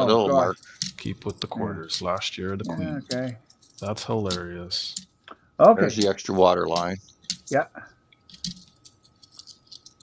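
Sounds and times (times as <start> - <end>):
man saying yeah: 2.6 - 3.2.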